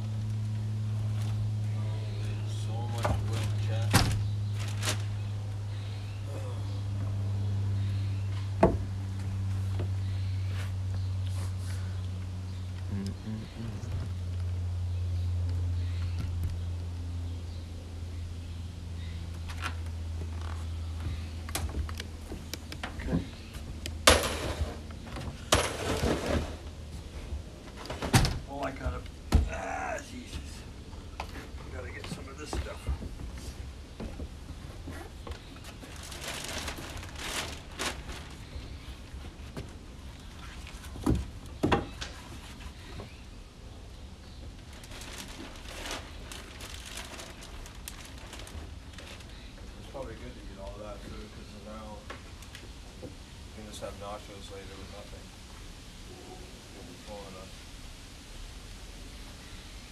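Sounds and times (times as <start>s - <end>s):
faint voices: 6.1s - 7.0s, 12.8s - 14.1s
knocks and thuds: 28.0s - 29.6s.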